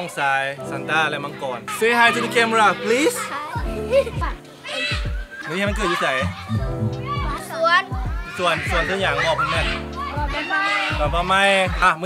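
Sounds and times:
background music with steady beat: 0.0 - 12.0
children talking: 0.0 - 12.0
man talking: 5.4 - 6.5, 8.4 - 9.8, 11.0 - 12.0.

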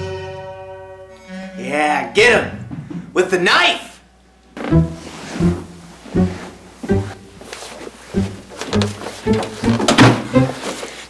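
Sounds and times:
low staccato background music: 4.6 - 7.5, 8.1 - 10.6.

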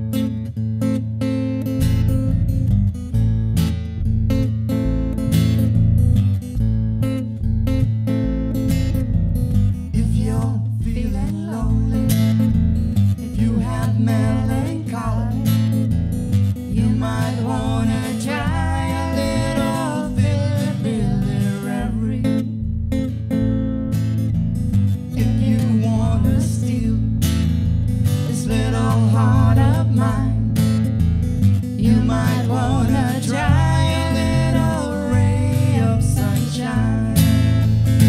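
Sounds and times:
strummed acoustic guitar: 0.0 - 38.0
person singing: 13.4 - 15.5, 16.7 - 22.4, 28.2 - 30.5, 31.8 - 37.4.

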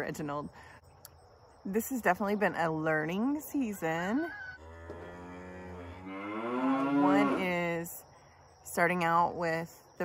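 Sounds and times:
cow mooing: 4.4 - 7.6.

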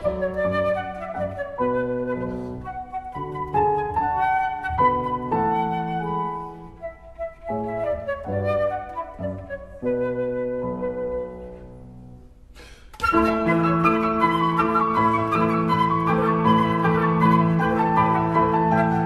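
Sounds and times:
flute: 0.0 - 12.1, 13.0 - 19.0
grand piano: 0.0 - 19.0.

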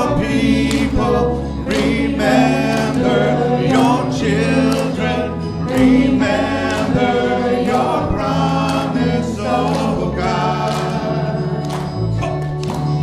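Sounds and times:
acoustic guitar: 0.0 - 13.0
bass guitar: 0.0 - 13.0
electric guitar: 0.0 - 13.0
voices singing together: 0.0 - 13.0.

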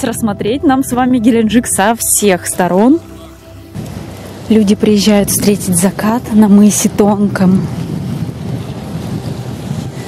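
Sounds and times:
wind buffeting microphone: 0.0 - 10.0
sea surf washing on rocks: 3.1 - 10.0.

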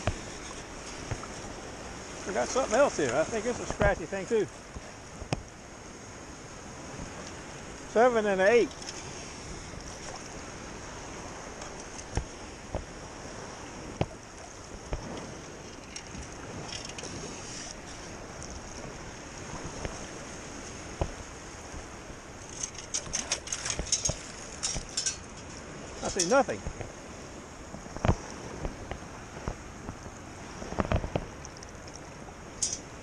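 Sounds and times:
surf sloshing around legs: 0.0 - 33.0
metal scoop digging sand: 22.4 - 26.4, 32.6 - 32.9.

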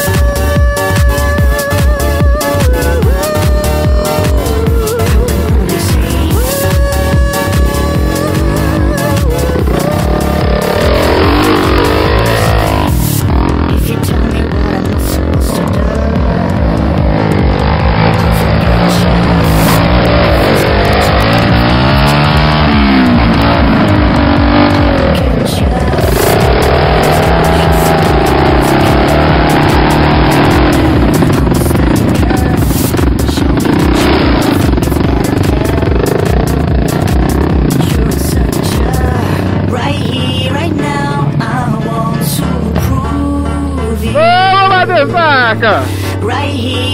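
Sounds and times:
electronic dance music: 0.0 - 39.2, 44.0 - 46.0
dirt bike engine revving: 0.0 - 46.9.

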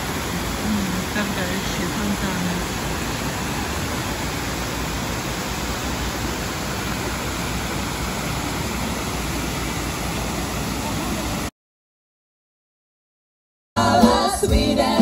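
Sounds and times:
fountain water splashing: 0.0 - 11.5.

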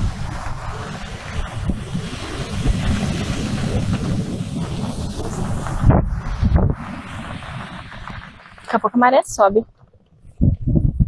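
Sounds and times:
surf breaking: 0.0 - 9.7
wind buffeting microphone: 0.0 - 11.0.

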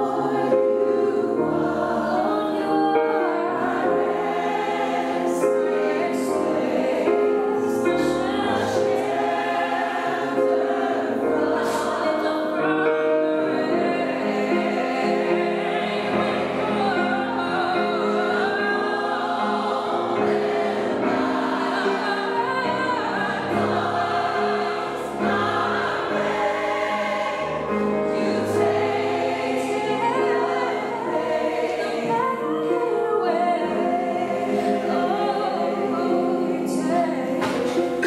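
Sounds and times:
gospel choir singing: 0.0 - 38.0
piano accompaniment: 0.0 - 38.0.

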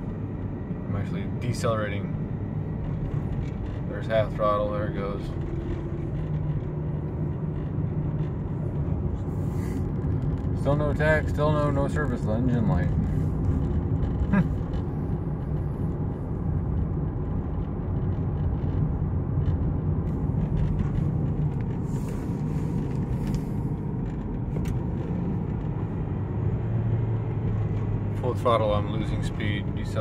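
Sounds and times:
car engine drone: 0.0 - 30.0
road noise: 0.0 - 30.0.

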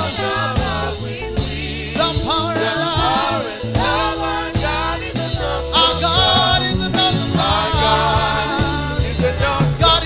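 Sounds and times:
drums: 0.0 - 10.0
steady bass line: 0.0 - 10.0
voices singing: 0.0 - 10.0.

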